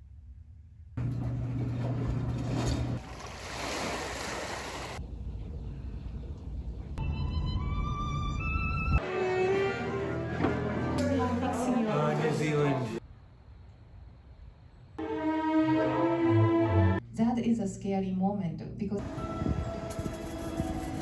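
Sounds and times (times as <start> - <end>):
bowed-string music: 7.0 - 13.0, 15.0 - 17.0.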